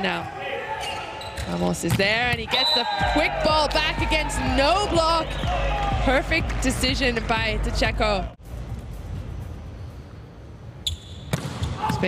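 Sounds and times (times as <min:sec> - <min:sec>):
sports hall ambience: 0:00.0 - 0:12.0
referee's whistle: 0:02.5 - 0:03.3.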